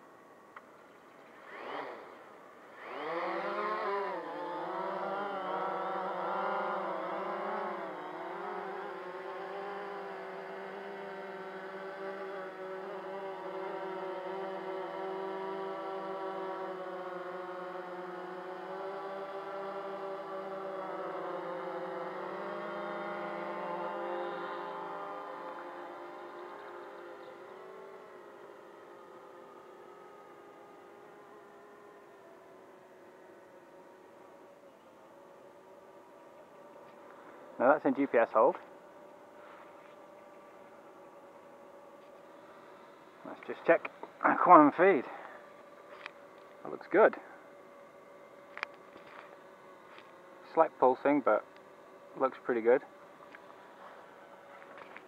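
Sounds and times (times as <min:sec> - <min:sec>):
quadcopter propeller whine: 0:00.0 - 0:55.0.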